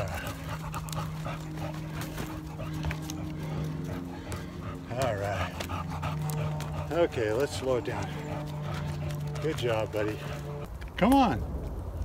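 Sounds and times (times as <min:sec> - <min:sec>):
dog panting: 0:00.0 - 0:10.7
steady low drone: 0:00.0 - 0:12.0.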